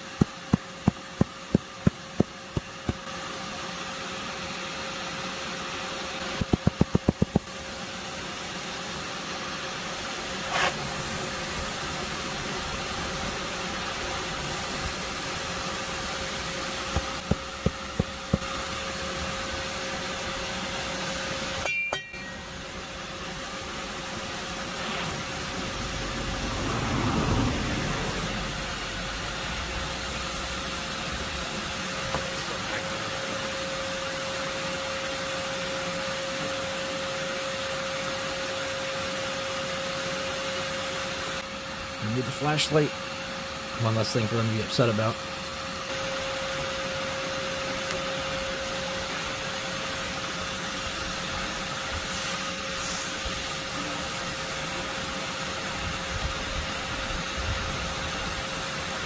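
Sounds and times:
vacuum cleaner running: 0.0s - 59.0s.

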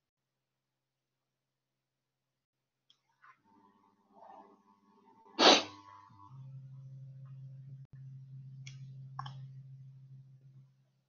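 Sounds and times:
steady low hum: 3.5s - 11.0s
person sneezing: 5.4s - 5.7s.

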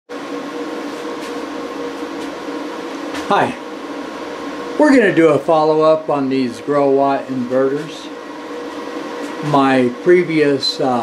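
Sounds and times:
cooling fan noise: 0.1s - 11.0s
inverter humming: 0.1s - 11.0s.

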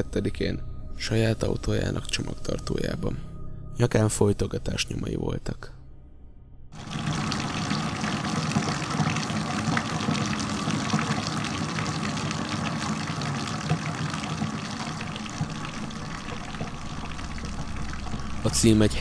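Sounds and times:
water running steadily: 6.8s - 19.0s.

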